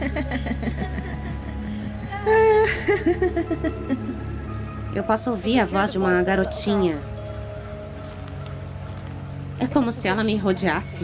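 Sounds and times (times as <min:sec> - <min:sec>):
girl singing and laughing: 0:00.0 - 0:04.6
low music drone: 0:00.0 - 0:11.0.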